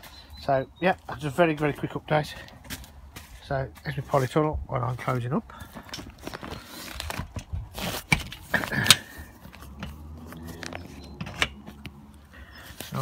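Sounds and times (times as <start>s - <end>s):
plastic and mesh rustling: 5.8s - 11.8s.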